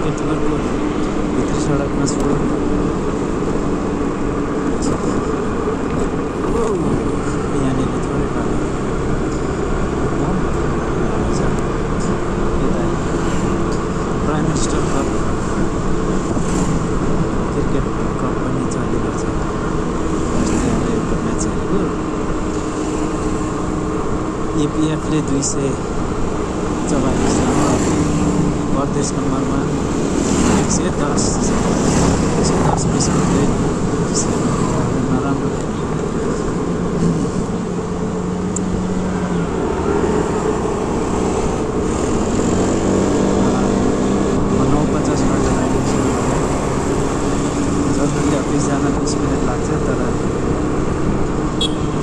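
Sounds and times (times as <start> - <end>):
motorcycle engine and road noise: 0.0 - 52.0.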